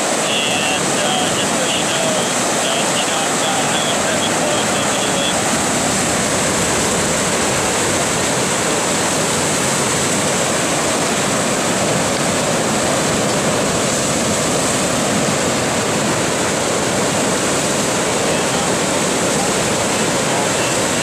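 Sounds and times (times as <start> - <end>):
rushing flood water: 0.0 - 21.0.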